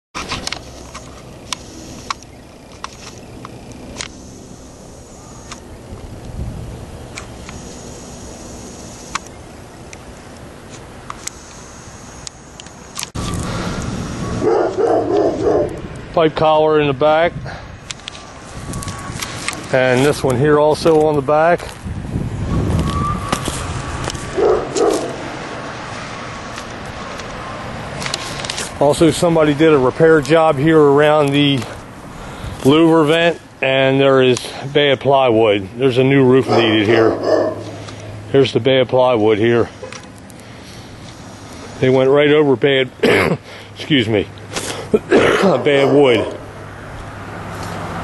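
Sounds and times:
sharp clicks: 0.2s - 6.4s, 7.1s - 13.9s
dog barking: 14.4s - 15.8s, 24.4s - 25.2s, 36.4s - 37.8s, 45.5s - 46.4s.

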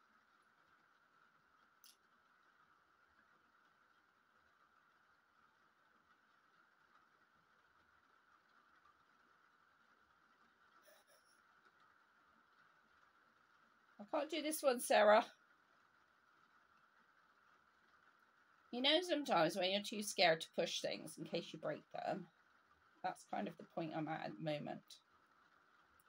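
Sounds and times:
faint steady whine: 0.0s - 26.0s.

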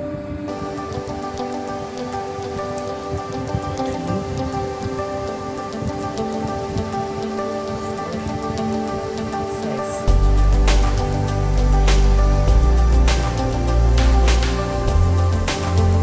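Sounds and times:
slow sustained background music: 0.0s - 16.0s
light crackling patter: 0.5s - 16.0s.

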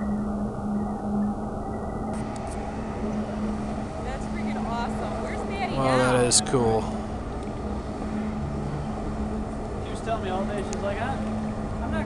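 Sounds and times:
motorboat engine humming: 0.0s - 12.0s
people talking: 4.0s - 7.0s, 9.8s - 12.0s.

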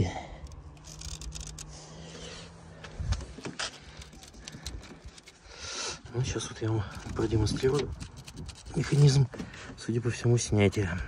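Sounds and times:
handling plastic parts: 0.4s - 2.0s, 2.8s - 11.0s.

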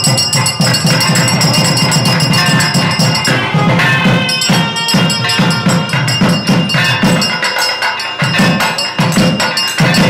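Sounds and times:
bells ringing: 0.0s - 10.0s
drum beaten in fast rhythm: 0.0s - 10.0s.

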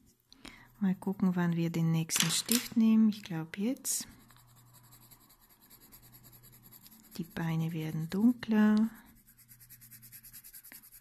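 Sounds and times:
pencil scratching on paper: 4.0s - 11.0s.

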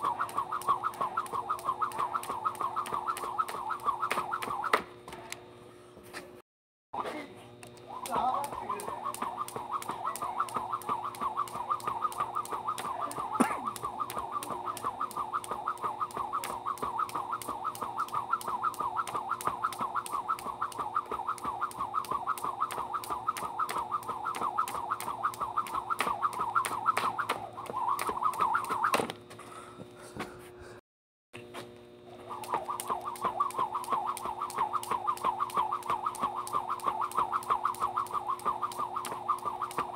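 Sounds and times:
rhythmic whirring of jump rope: 0.0s - 5.5s, 7.5s - 30.3s, 31.4s - 39.9s.

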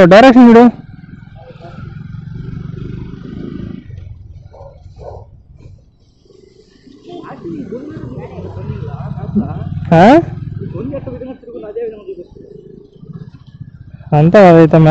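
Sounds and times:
motorcycle engine running: 0.0s - 14.9s.

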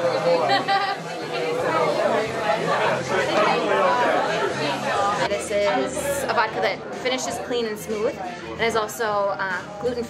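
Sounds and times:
crowd talking and laughing: 0.0s - 10.0s.

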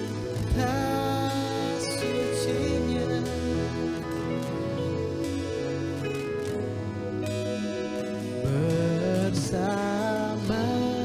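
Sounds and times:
band playing slow song: 0.0s - 11.0s
man singing: 0.3s - 4.7s, 8.4s - 11.0s.

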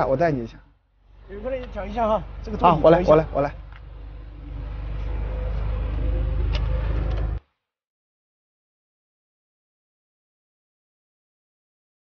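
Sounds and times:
car engine rumble from inside: 1.0s - 7.4s.

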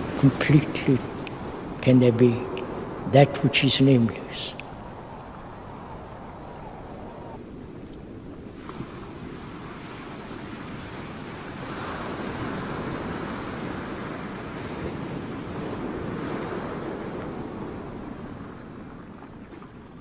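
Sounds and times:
surf washing onto beach: 0.0s - 20.0s.

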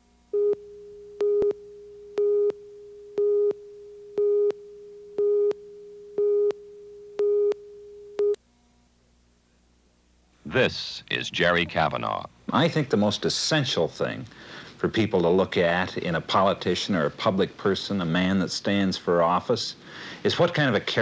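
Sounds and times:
faint steady tone: 0.0s - 12.5s
electronic countdown beeps: 0.4s - 8.4s.

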